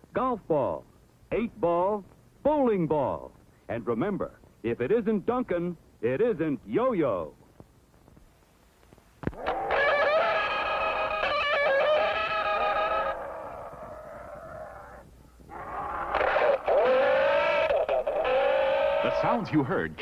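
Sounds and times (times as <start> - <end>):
toy space gun warbling tones: 9.4 - 13.2.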